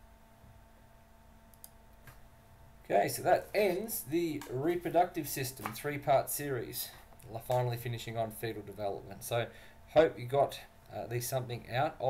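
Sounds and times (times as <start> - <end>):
faint steady hum: 0.0 - 12.0
soft clicks: 1.5 - 2.2
person speaking: 2.9 - 12.0.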